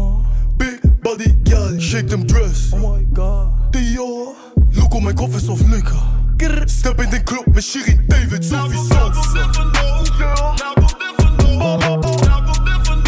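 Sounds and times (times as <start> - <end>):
deep bass line: 0.0 - 4.0, 4.6 - 13.0
rapped vocals: 0.0 - 13.0.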